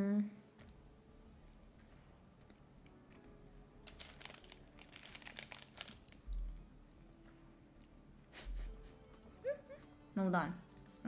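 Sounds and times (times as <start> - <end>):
paper sleeve crinkling: 3.8 - 6.2.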